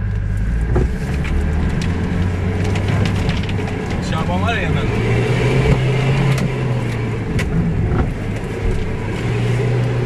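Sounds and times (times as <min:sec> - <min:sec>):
car engine running under load: 0:00.0 - 0:10.0.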